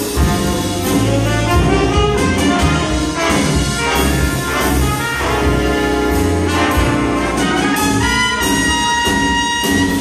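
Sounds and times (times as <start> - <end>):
big band jazz: 0.0 - 10.0.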